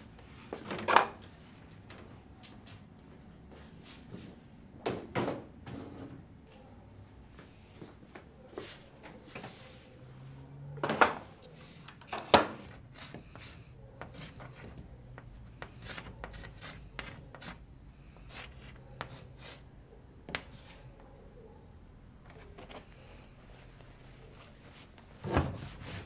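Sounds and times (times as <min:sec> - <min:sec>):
chalk on a blackboard: 0:12.6 - 0:19.7, 0:20.3 - 0:21.0, 0:24.4 - 0:26.0.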